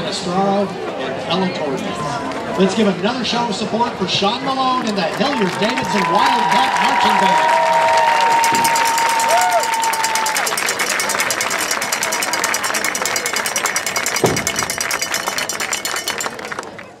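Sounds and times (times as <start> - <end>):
crowd applauding and cheering: 4.4 - 17.0.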